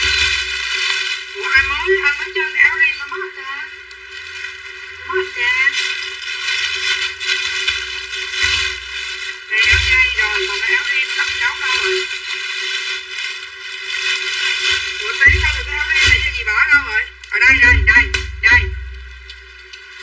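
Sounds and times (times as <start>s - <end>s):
garbled distorted voices: 1.3s - 3.9s, 5.0s - 6.1s, 9.4s - 12.1s, 15.0s - 19.0s.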